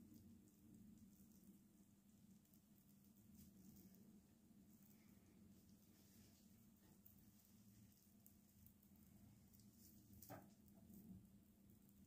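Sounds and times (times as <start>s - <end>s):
low steady hum: 0.0s - 12.0s
faint rustle: 0.1s - 11.2s.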